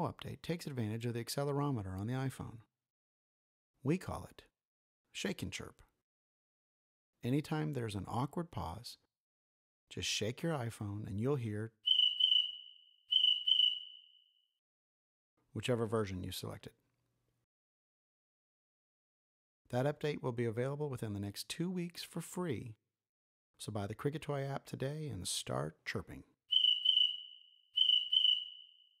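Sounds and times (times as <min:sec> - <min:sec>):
high cricket chirps: 0:11.9 - 0:14.2, 0:26.5 - 0:28.8.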